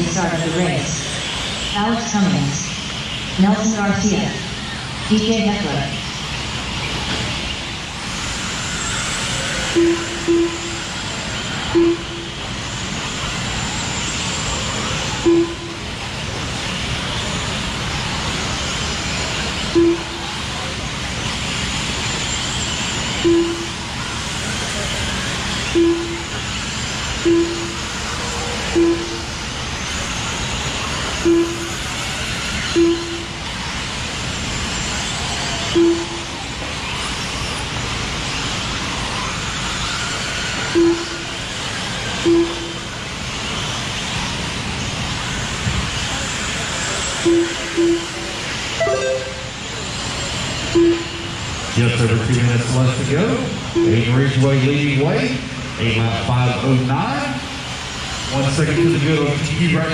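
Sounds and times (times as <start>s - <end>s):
rc car motors whining: 0.0s - 48.8s, 49.5s - 59.9s
short single-pitched beeps: 9.7s - 10.9s, 11.7s - 12.4s, 15.2s - 15.8s, 19.8s - 20.2s, 23.1s - 23.8s, 25.7s - 26.3s, 27.2s - 27.8s, 28.7s - 29.3s, 31.2s - 31.7s, 32.8s - 33.4s, 35.7s - 36.3s, 40.8s - 41.3s, 42.2s - 42.8s, 47.2s - 48.2s, 48.8s - 49.7s, 50.7s - 51.4s.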